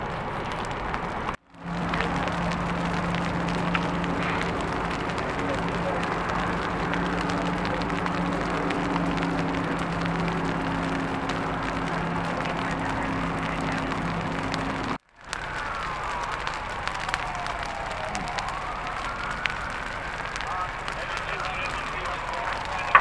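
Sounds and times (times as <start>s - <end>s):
brush fire crackling: 0.0s - 23.0s
engine drone: 0.0s - 23.0s
siren wailing: 1.5s - 23.0s.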